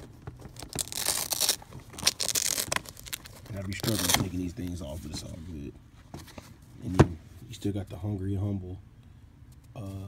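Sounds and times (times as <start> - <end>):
sneaker rustling and crinkling: 0.0 - 5.7.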